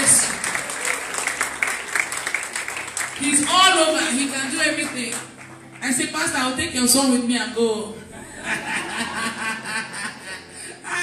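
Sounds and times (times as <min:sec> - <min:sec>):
woman laughing into microphone: 0:08.2 - 0:11.0.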